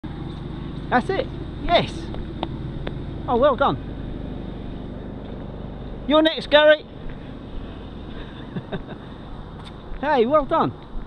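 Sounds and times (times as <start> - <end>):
low hum: 0.0 - 10.0
bicycle tyres rolling on tarmac: 0.1 - 11.0.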